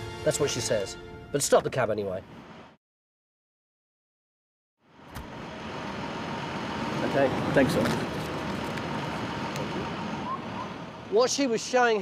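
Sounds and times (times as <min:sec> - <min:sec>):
city street traffic hum: 0:00.0 - 0:02.8, 0:04.8 - 0:12.0.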